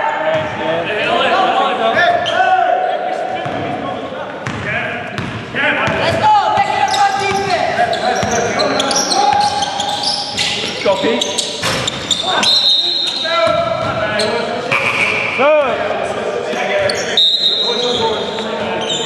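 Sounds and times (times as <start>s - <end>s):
players' voices in a hall: 0.0s - 19.0s
basketball bouncing: 4.4s - 4.6s, 5.2s - 7.6s
sneakers squeaking on wood floor: 4.4s - 15.8s, 16.6s - 19.0s.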